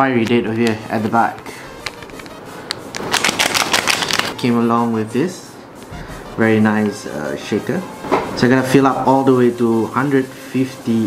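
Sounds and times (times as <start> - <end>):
plastic packaging crinkling: 0.2 - 4.4.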